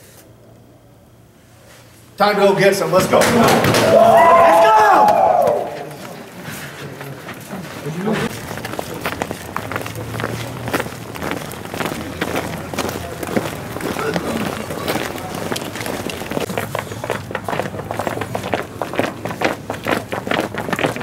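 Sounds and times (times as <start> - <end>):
players shouting and chatter: 2.2 - 19.5
football cleats clattering on concrete: 7.2 - 21.0.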